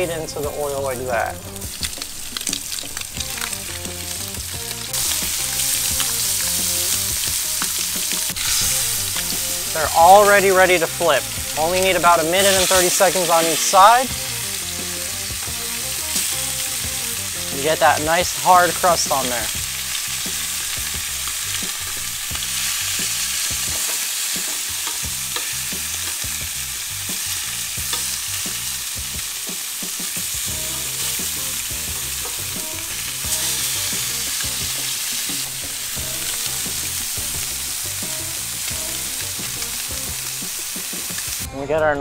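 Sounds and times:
fish sizzling in hot oil: 0.0 - 41.5.

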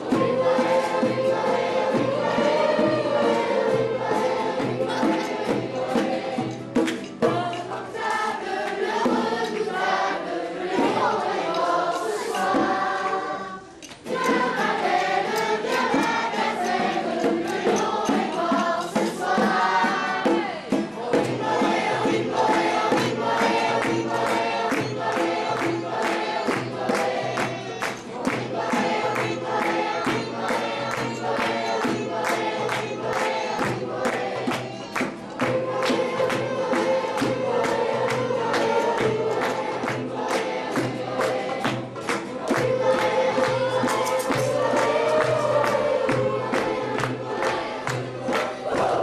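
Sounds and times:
choir singing: 0.0 - 49.0
instrumental accompaniment: 0.0 - 49.0
steady beat of strokes: 0.0 - 49.0.

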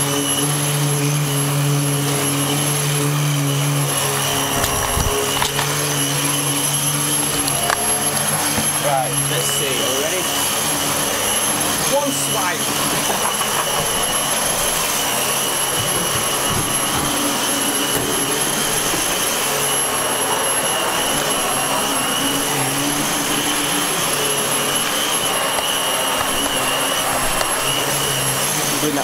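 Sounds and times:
vacuum cleaner whining: 0.0 - 29.0.

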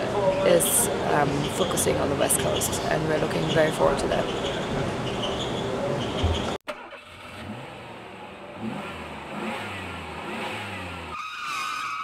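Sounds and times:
vehicle engine accelerating: 6.1 - 11.2.

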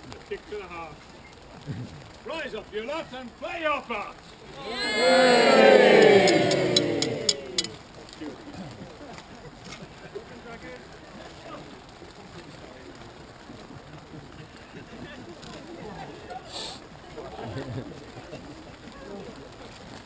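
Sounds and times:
background crowd murmur: 0.0 - 20.0
crowd crying out: 4.5 - 7.8.

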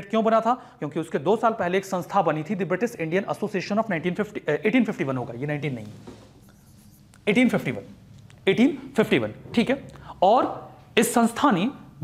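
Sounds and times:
man speaking: 0.0 - 6.0, 7.2 - 12.0
pen strokes on a screen: 6.3 - 7.2.

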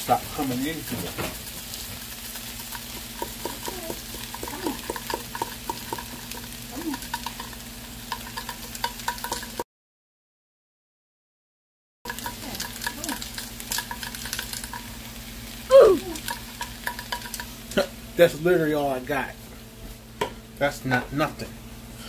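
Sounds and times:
shrimp sizzling in a frying pan: 0.0 - 9.6, 12.1 - 20.2.

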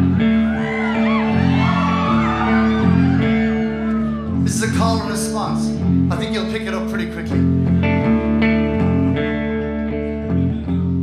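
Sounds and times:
audience whooping and cheering: 0.0 - 5.1
guitar playing chords: 0.0 - 11.0.

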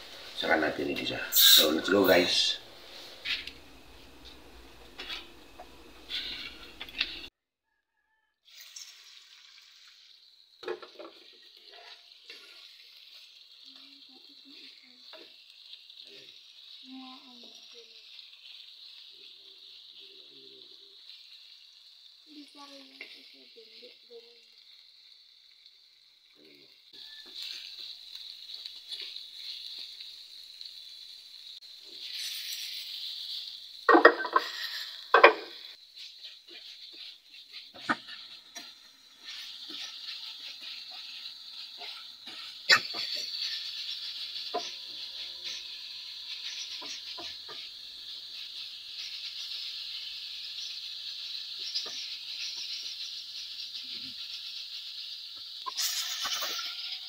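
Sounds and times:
liver sizzling in a frying pan: 0.0 - 7.3, 8.5 - 57.0
metal spoon scraping a pan: 4.2 - 7.3, 32.0 - 45.7, 55.6 - 57.0.

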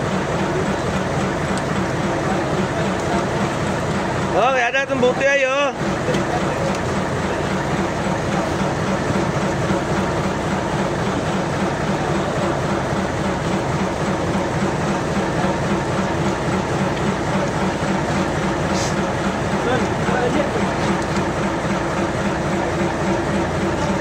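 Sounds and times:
boat engine droning: 0.0 - 24.0.

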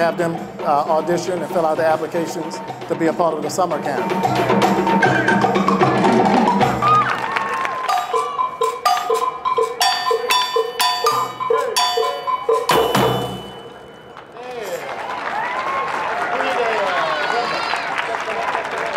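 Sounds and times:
percussion ensemble playing: 0.0 - 15.8
crowd cheering: 4.6 - 9.2, 13.3 - 18.9.

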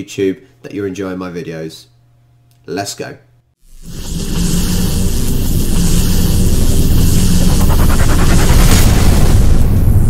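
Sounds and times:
music: 3.6 - 9.8
rumbling and hissing build-up: 3.7 - 10.0.

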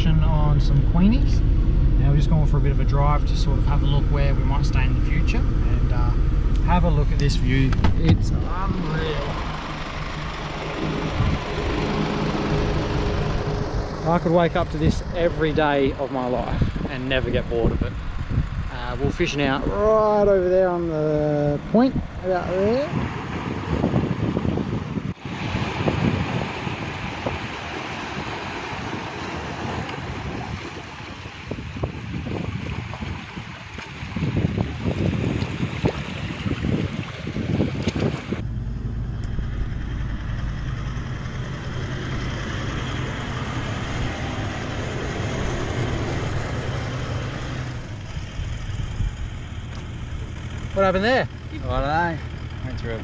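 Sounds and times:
vehicle engine and tyres on dirt: 0.0 - 53.0
wind buffeting microphone: 0.0 - 53.0
surf washing on rocks: 25.2 - 38.3.

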